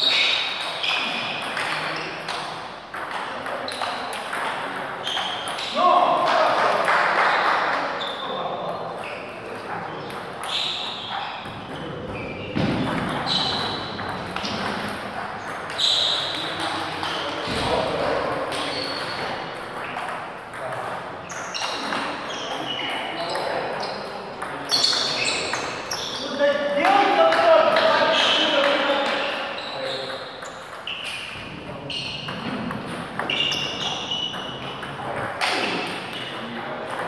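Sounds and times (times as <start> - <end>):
murmur of people talking: 0.0 - 37.0.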